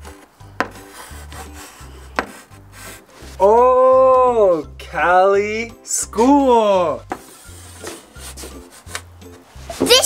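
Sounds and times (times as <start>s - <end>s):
chalk scraping on chalkboard: 0.6s - 3.5s, 7.1s - 9.9s.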